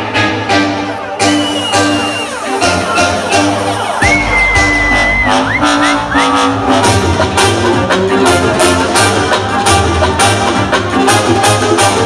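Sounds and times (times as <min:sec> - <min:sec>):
loud live electronic music: 0:00.0 - 0:12.0
deep bass: 0:04.0 - 0:12.0.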